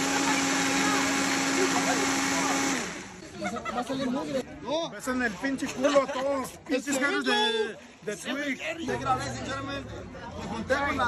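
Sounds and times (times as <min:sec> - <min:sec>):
motor humming: 0:00.0 - 0:03.2.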